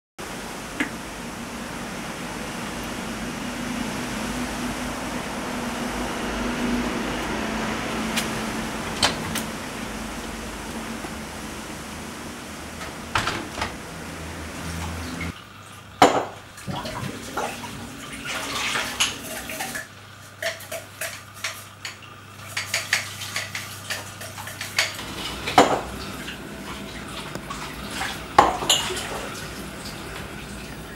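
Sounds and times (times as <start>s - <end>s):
steady low hum: 0.2s - 20.2s, 24.8s - 30.9s
running water: 0.2s - 30.9s
dishes clinking in a sink: 16.0s - 26.4s, 27.2s - 29.4s.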